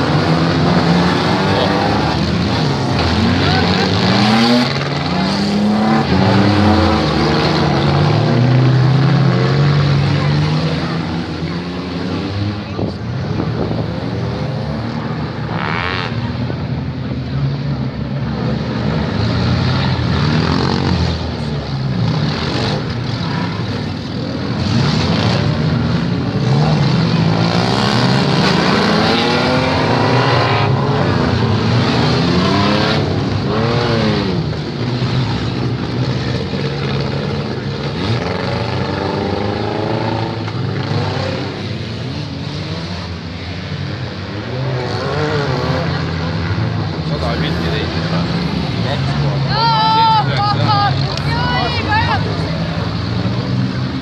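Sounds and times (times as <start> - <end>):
car engines revving: 0.0 - 54.0.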